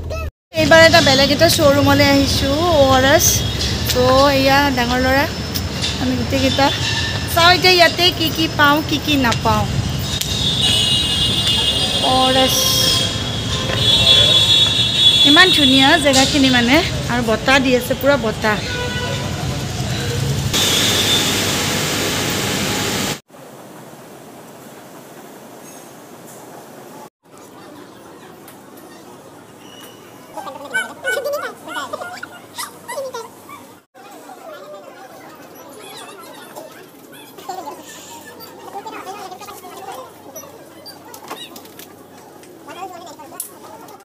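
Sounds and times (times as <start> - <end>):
low traffic rumble: 0.6 - 23.1.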